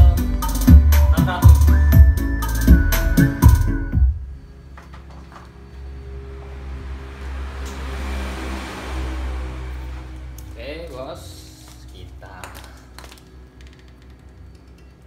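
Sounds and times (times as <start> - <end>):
music with heavy bass beat: 0.0 - 4.3
person speaking: 10.5 - 13.1.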